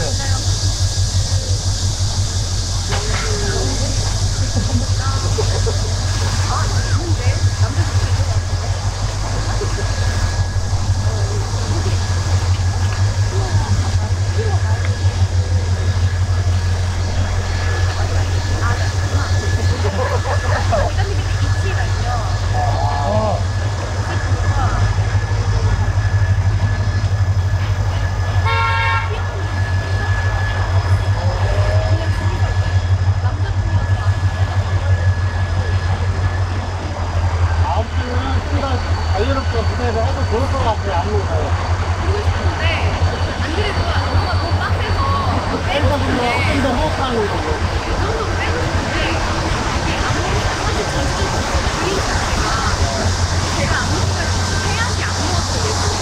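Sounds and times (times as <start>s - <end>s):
steady low hum: 0.0s - 56.0s
background voices: 29.4s - 56.0s.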